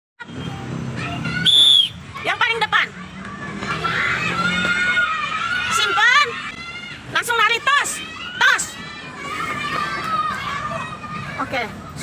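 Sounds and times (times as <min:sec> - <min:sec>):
children chattering: 0:00.7 - 0:12.0
whistle blast: 0:01.4 - 0:02.0.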